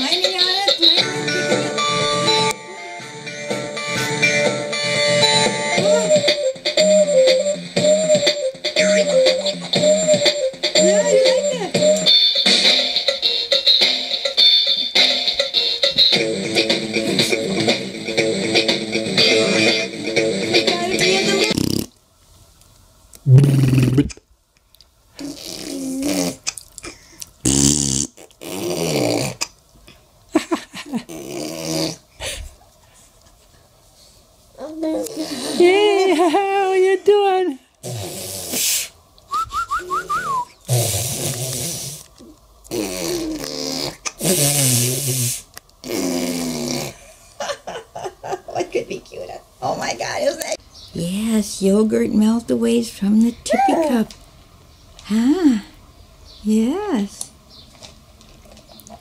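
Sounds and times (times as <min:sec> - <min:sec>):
electronic toy melody: 0:00.9 - 0:12.5.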